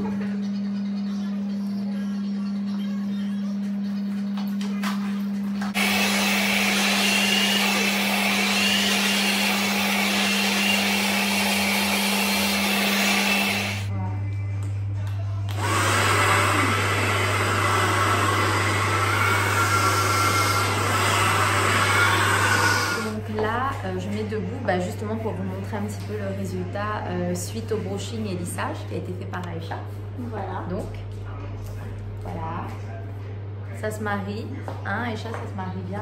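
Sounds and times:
hair dryer blowing: 5.7 - 13.9, 15.5 - 23.2.

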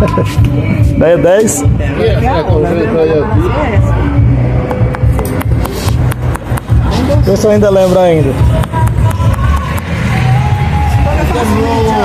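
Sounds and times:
background music with bass beat: 0.0 - 12.0.

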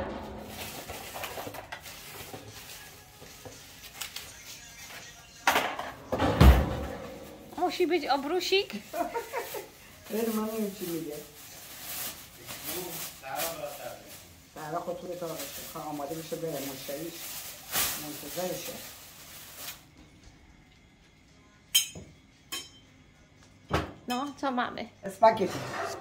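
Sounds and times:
people talking: 7.6 - 9.3, 10.1 - 11.3, 12.6 - 17.2.

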